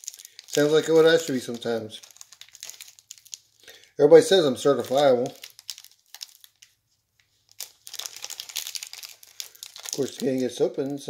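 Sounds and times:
card pack wrapper crinkling: 0:00.0 - 0:11.0.

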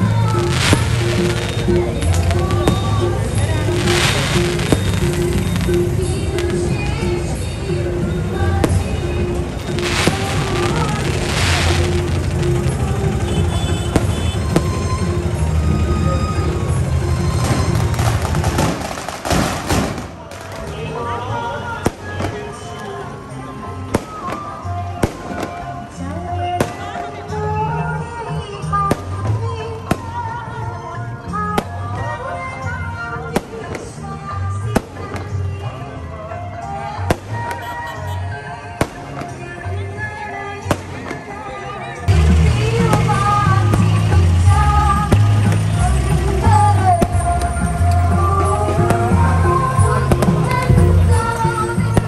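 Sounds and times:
fireworks bangs: 0:00.0 - 0:07.4, 0:08.4 - 0:21.1, 0:23.9 - 0:25.9
firecrackers banging: 0:00.0 - 0:30.4, 0:37.0 - 0:41.4, 0:42.0 - 0:52.0
music: 0:00.0 - 0:52.0
voices: 0:00.0 - 0:52.0.

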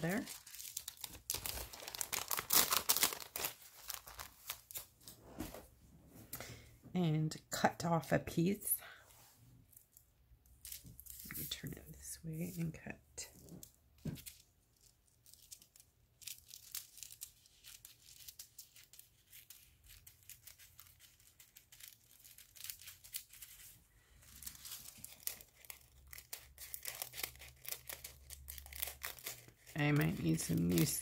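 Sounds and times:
foil crinkling: 0:00.0 - 0:04.9, 0:15.2 - 0:31.0.

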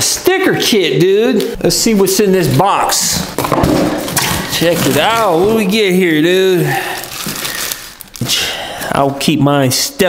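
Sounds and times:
plastic packaging crinkling: 0:02.5 - 0:09.0.

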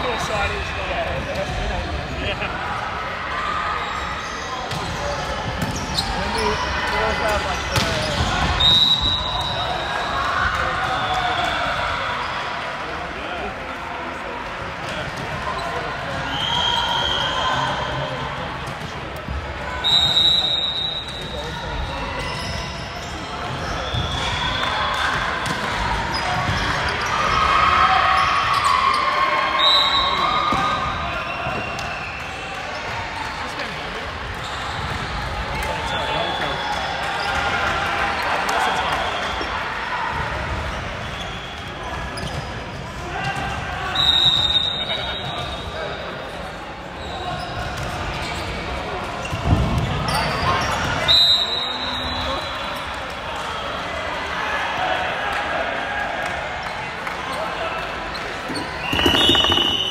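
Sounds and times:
players' voices and calls: 0:00.0 - 0:54.2, 0:54.8 - 0:59.9
sneakers squeaking on wooden court: 0:03.9 - 0:06.7, 0:58.1 - 0:59.9
referee's whistle blasts: 0:08.5 - 0:09.7, 0:16.2 - 0:17.4, 0:19.8 - 0:21.4, 0:29.6 - 0:30.6, 0:43.9 - 0:45.7, 0:51.1 - 0:52.5, 0:58.8 - 0:59.9
volleyball bounced and struck: 0:58.8 - 0:59.9.

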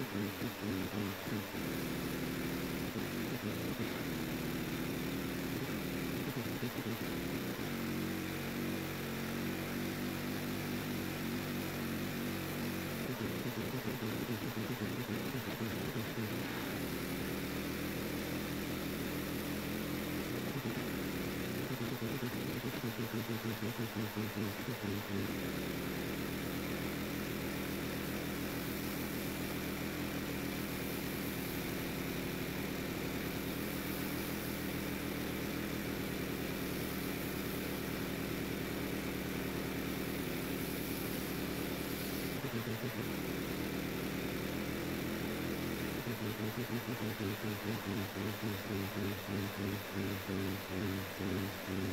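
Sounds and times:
pressure washer engine running: 0:00.0 - 0:51.9.

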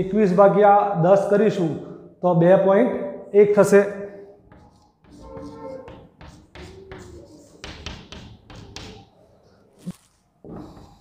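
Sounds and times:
chalk writing on blackboard: 0:04.3 - 0:11.0
chalk tapping on board: 0:04.4 - 0:09.1.

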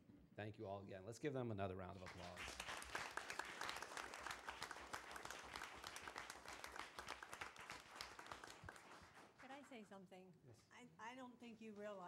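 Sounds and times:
audience applauding: 0:02.0 - 0:09.7.

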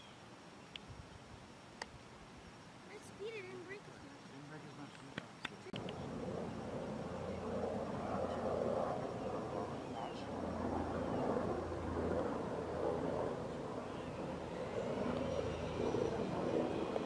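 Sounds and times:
low engine drone: 0:05.8 - 0:17.0.

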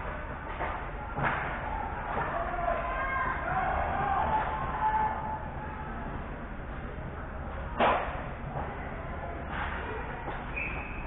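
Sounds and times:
low rink hum: 0:00.0 - 0:11.0.

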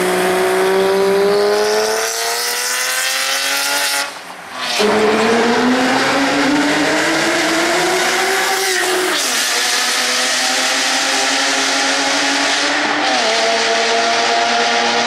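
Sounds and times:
car engine accelerating hard: 0:00.0 - 0:15.0.

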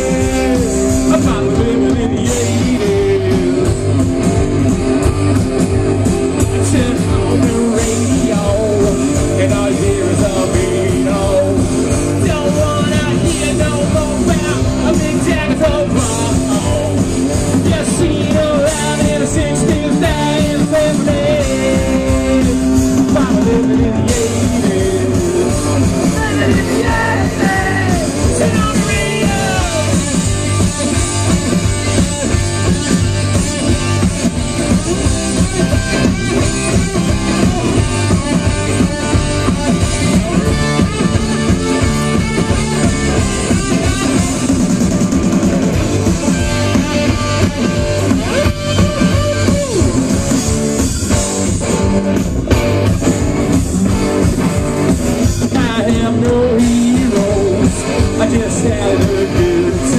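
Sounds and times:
electric guitar: 0:00.0 - 0:59.9
punk rock band playing live: 0:00.0 - 0:59.9.

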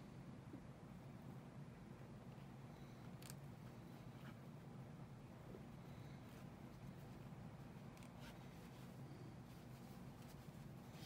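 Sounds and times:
low room hum: 0:00.0 - 0:11.0
needle and thread rustling: 0:02.2 - 0:11.0.

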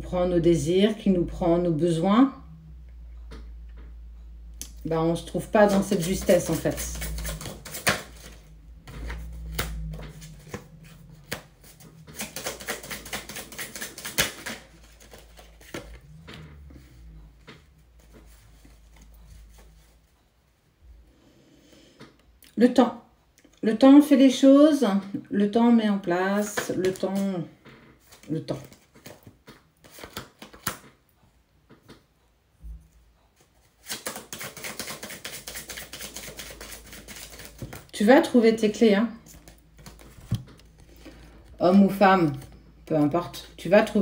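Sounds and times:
cards being shuffled: 0:05.4 - 0:16.2, 0:18.0 - 0:19.9, 0:26.4 - 0:27.4, 0:28.0 - 0:31.0, 0:33.4 - 0:38.0, 0:39.2 - 0:41.3.

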